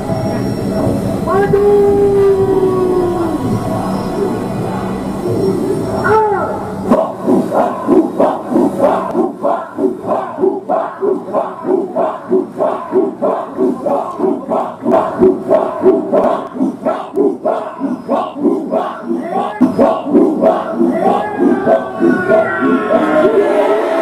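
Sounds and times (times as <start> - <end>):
group chanting a war cry: 3.2 - 24.0.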